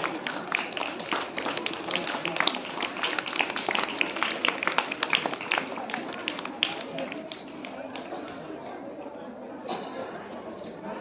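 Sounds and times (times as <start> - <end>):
audience clapping: 0.0 - 8.5.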